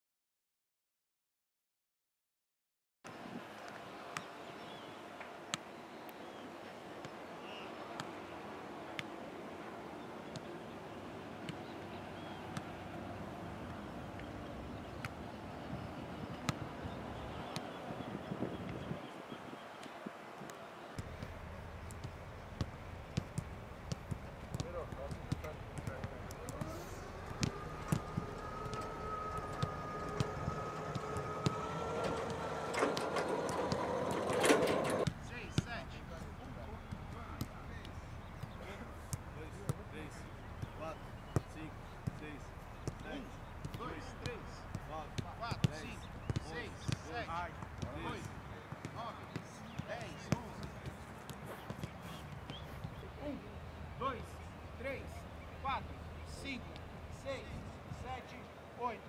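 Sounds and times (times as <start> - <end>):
players calling out: 24.5 - 58.1.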